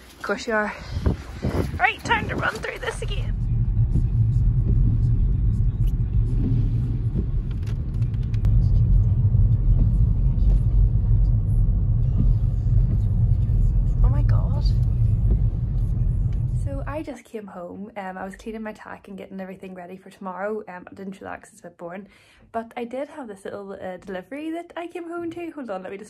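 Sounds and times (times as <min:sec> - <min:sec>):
car rumble from inside cabin: 0:01.0 - 0:17.1.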